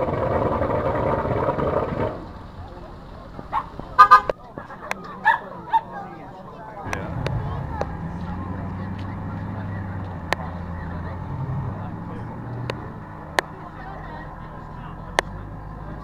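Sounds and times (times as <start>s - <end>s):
vehicle engine humming: 0.0s - 16.0s.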